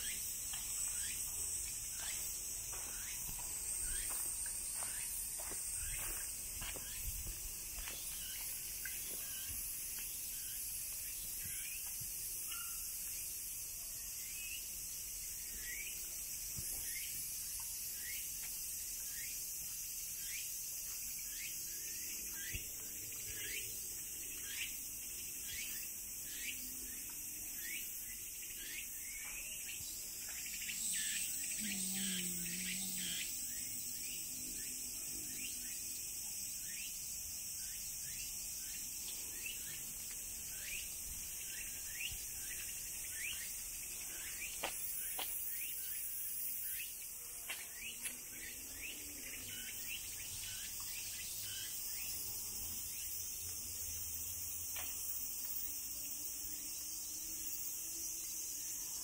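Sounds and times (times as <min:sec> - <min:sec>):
cicadas droning: 0:00.0 - 0:59.0.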